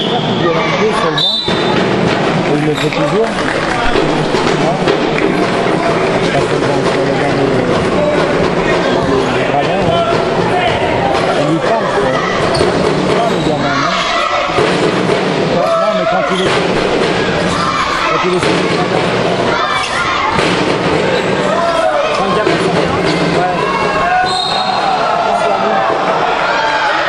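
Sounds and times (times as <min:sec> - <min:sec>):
voices in large hall: 0:00.0 - 0:27.0.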